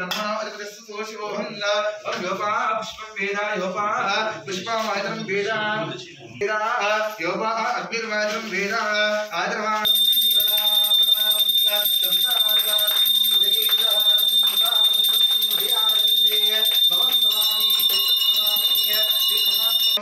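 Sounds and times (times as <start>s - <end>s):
hand bell ringing: 9.8s - 20.0s.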